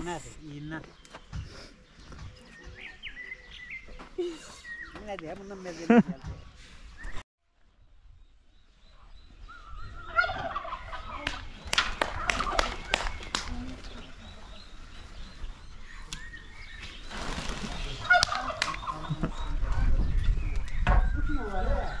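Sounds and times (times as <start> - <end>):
turkey gobbling: 10.0 - 12.7, 18.0 - 19.2.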